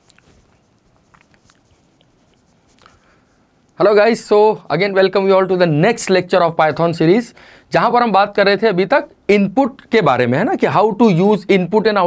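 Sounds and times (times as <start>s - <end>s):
man speaking: 3.8s - 12.0s.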